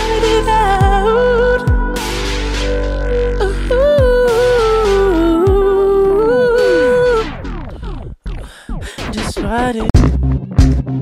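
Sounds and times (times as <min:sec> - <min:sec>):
wordless vocal sliding in pitch: 0:00.0 - 0:10.0
slow r and b song: 0:00.0 - 0:11.0
falling gliding tones: 0:02.1 - 0:08.1.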